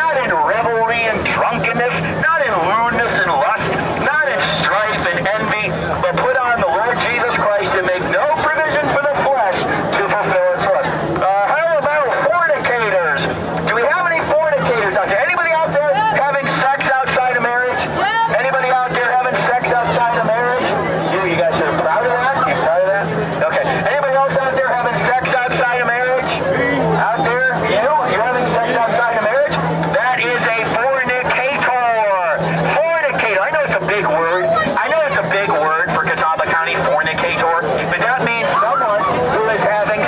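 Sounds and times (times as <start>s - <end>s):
man speaking through loudspeaker: 0.0s - 40.0s
steady low hum: 0.0s - 40.0s.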